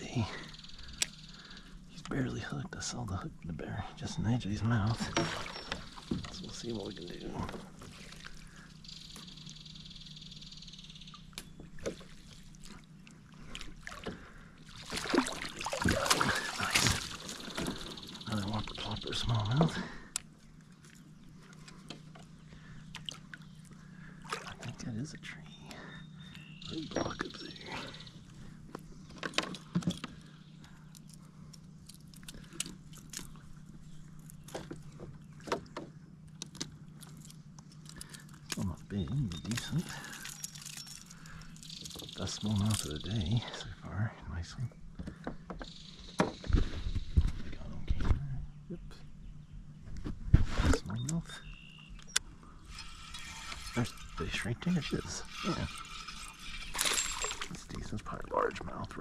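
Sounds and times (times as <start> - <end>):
water splashing against kayak: 5.0 - 6.5, 11.7 - 18.2.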